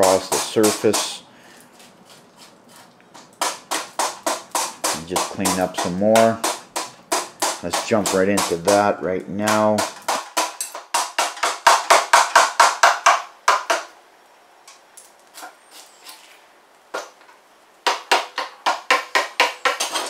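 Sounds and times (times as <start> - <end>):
hammer tapping wood chisel: 0.0 - 1.2, 3.2 - 13.9, 17.8 - 20.0.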